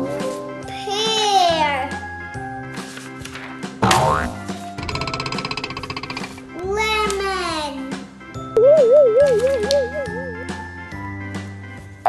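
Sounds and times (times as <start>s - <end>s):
background music: 0.0s - 12.0s
cartoon boing: 3.8s - 4.4s.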